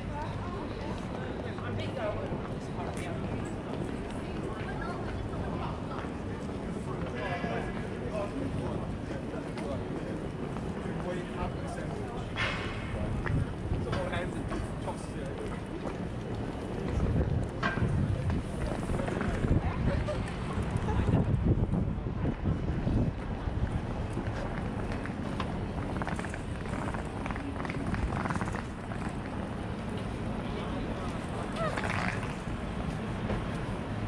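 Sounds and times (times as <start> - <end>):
low traffic rumble: 0.0 - 34.0
passers-by talking: 0.0 - 34.0
wind buffeting microphone: 15.7 - 34.0.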